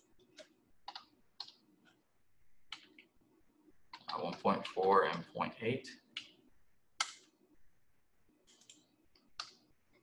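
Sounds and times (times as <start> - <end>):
keyboard and mouse clicks: 0.0 - 2.0, 2.7 - 3.1, 3.9 - 5.3, 7.0 - 7.4, 8.4 - 10.0.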